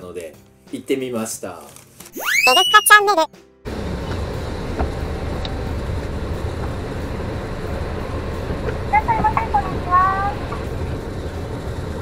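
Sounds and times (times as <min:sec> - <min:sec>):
car engine rumble: 0:03.7 - 0:12.0
tyres on wet pavement: 0:03.7 - 0:12.0.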